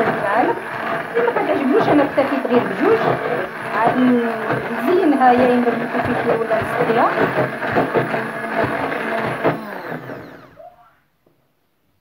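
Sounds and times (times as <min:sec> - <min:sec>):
stick blender running: 0:00.0 - 0:10.9
blender motor winding down: 0:00.0 - 0:11.0.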